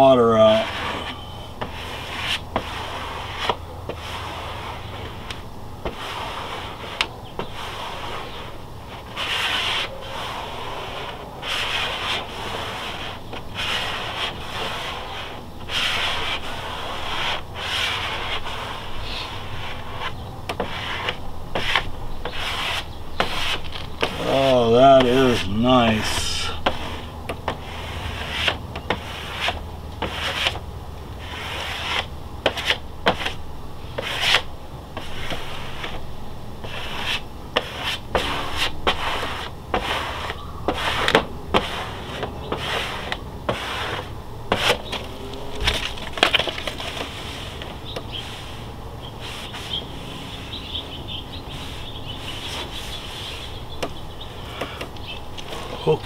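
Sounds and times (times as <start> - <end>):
squeegee scraping wet vinyl: 0.0 - 30.6, 31.2 - 56.0.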